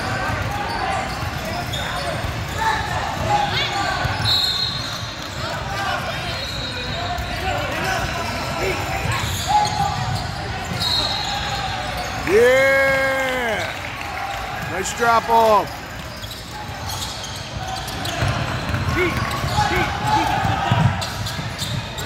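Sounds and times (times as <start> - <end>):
murmur of spectators: 0.0 - 22.0
sneaker squeaks: 0.3 - 12.3, 15.4 - 22.0.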